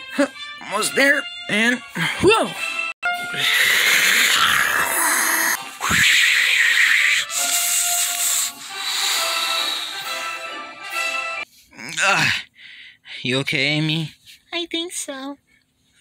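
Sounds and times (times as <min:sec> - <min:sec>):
background music with held notes: 0:00.0 - 0:03.6, 0:07.2 - 0:11.5.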